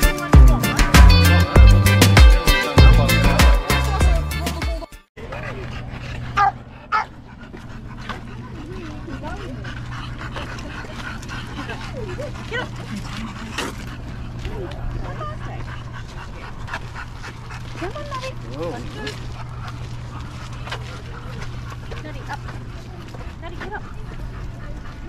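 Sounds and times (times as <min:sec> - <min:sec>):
dogs: 0:05.2 - 0:25.0
steady low rumble: 0:05.3 - 0:25.0
dog barking: 0:06.4 - 0:07.2
people chattering: 0:08.0 - 0:25.0.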